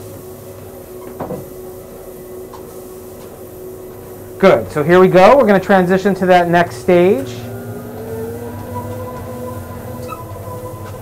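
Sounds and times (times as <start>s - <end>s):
footsteps on treadmill belt: 0.0s - 5.2s, 7.2s - 11.0s
treadmill motor humming: 0.0s - 11.0s.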